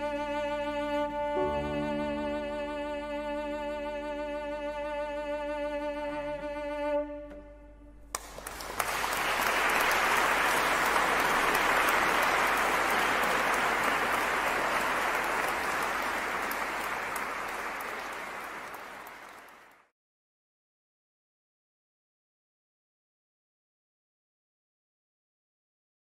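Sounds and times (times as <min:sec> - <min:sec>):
audience applause: 0:08.1 - 0:19.9.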